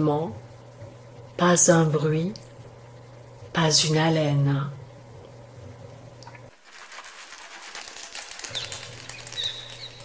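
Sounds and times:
high-pitched crackling rustle: 6.5s - 10.0s.

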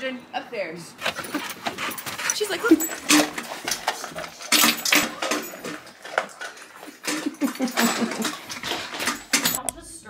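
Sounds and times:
dogs eating from metal bowls: 1.0s - 9.6s.

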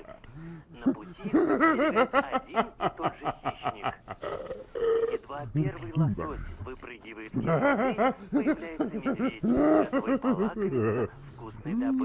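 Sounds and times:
hearty laughter: 0.8s - 5.3s, 7.3s - 11.5s.

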